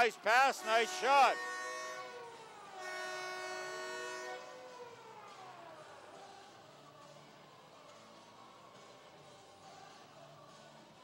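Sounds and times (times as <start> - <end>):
arena goal horn: 0.0 - 4.7.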